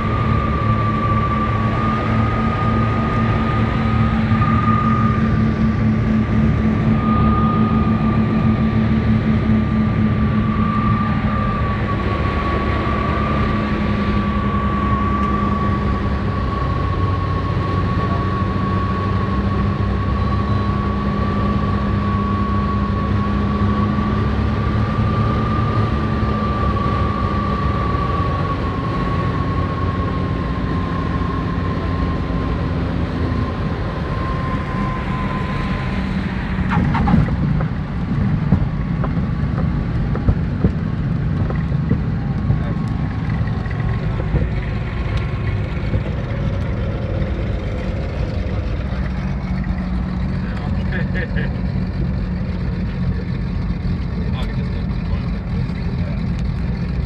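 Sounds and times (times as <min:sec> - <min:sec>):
aircraft engines droning: 0:00.0 - 0:57.0
high whine: 0:00.0 - 0:57.0
knocks and bumps: 0:36.7 - 0:42.6.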